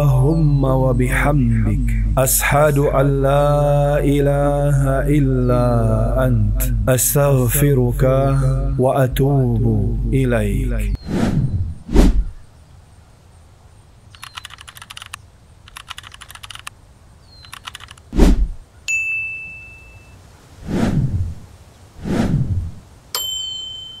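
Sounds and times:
falling whooshes: 0:11.0 - 0:12.4, 0:18.1 - 0:18.6, 0:20.6 - 0:22.8
low thump: 0:11.5 - 0:12.3, 0:18.2 - 0:18.6
keyboard typing clicks: 0:14.2 - 0:16.7, 0:17.4 - 0:18.1
bright bell dings: 0:18.9 - 0:20.2, 0:23.1 - 0:24.0.

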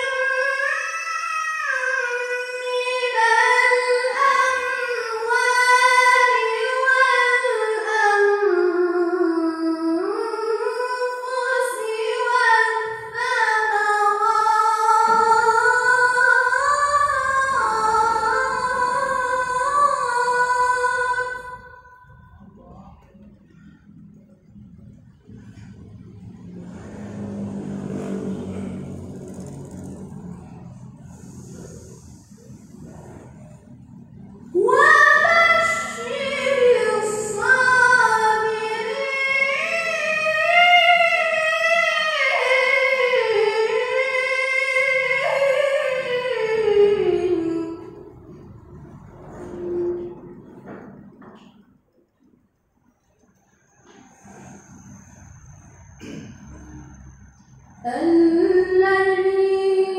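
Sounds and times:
boy chanting into microphone: 0:00.0 - 0:23.3, 0:34.5 - 0:48.1
vehicle engine passing: 0:00.0 - 0:51.9, 0:53.3 - 0:59.9
steady low hum: 0:01.6 - 0:59.9.

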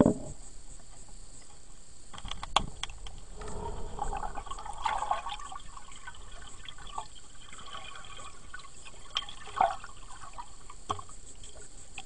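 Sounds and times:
water gurgling: 0:02.6 - 0:11.9.

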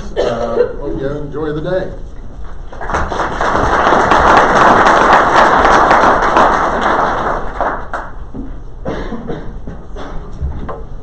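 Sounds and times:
audience applause: 0:02.7 - 0:08.2.

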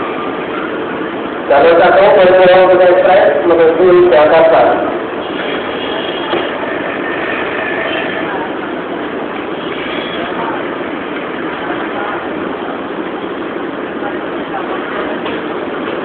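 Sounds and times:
train equipment running: 0:00.0 - 0:16.0
voices: 0:00.0 - 0:16.0.

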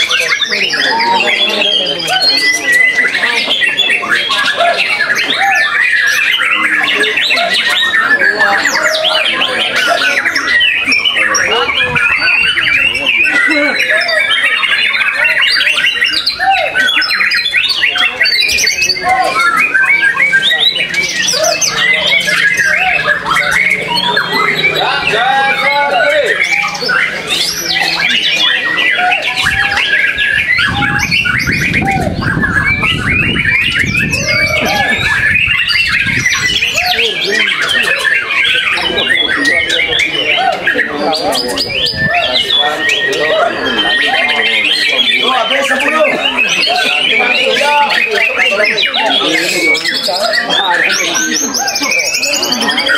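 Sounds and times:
chorus of birds singing: 0:00.0 - 0:52.9.

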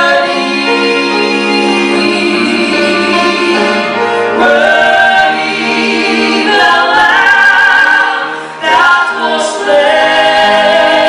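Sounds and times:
gospel choir singing in harmony: 0:00.0 - 0:11.0.

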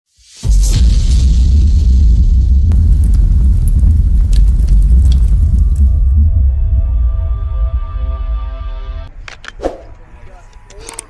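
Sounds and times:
explosion rumble: 0:00.5 - 0:08.4
fire crackles: 0:01.0 - 0:06.3.

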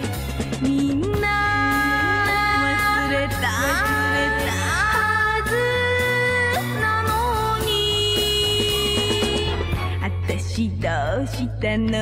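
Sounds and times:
pop music held note over bass: 0:00.9 - 0:11.1.

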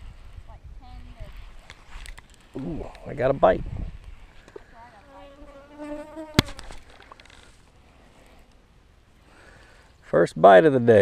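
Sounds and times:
fly buzzing: 0:04.8 - 0:07.0.

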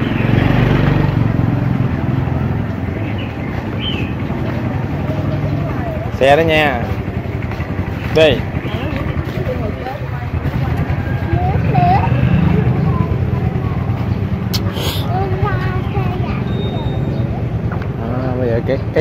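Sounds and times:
low traffic rumble: 0:00.0 - 0:19.0
motorbike engines running: 0:00.0 - 0:19.0
voices: 0:00.0 - 0:19.0.

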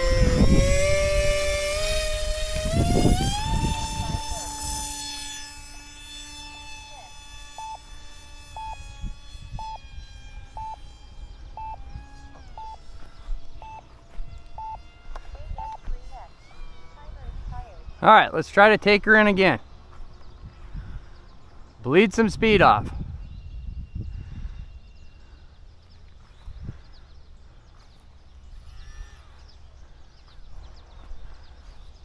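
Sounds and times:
model plane electric motor whining: 0:00.0 - 0:18.1, 0:23.0 - 0:32.0.

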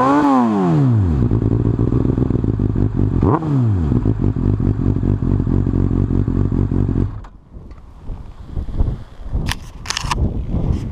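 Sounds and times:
motorcycle engine idling: 0:01.2 - 0:07.2.

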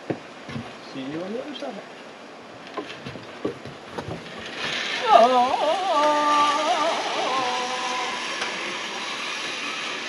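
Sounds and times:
zip-line trolley whirring on cable: 0:04.3 - 0:10.0
person crying ohh: 0:05.0 - 0:08.2.

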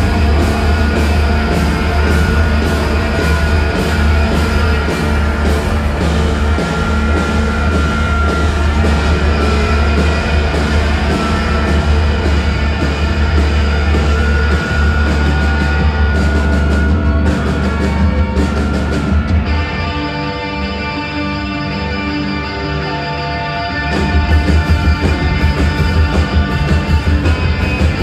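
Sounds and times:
rock band playing: 0:00.0 - 0:28.0.

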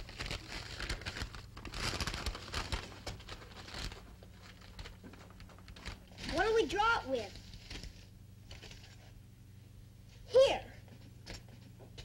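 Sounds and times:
old paper rustling: 0:00.0 - 0:09.2.

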